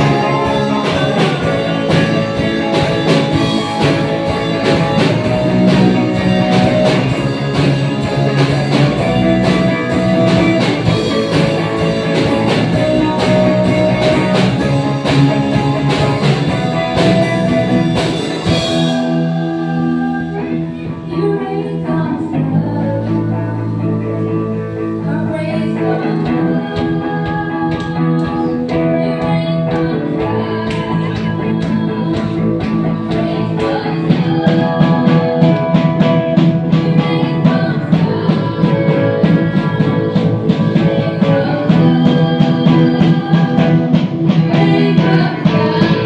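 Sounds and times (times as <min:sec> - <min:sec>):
drum kit: 0:00.0 - 0:46.0
electric guitars: 0:00.0 - 0:46.0
person singing into microphone: 0:00.0 - 0:46.0.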